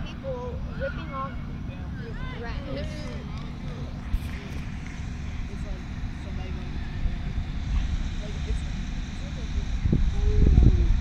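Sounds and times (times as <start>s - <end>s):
faint scattered voices: 0.0s - 11.0s
wind rumbling on microphone: 0.0s - 11.0s.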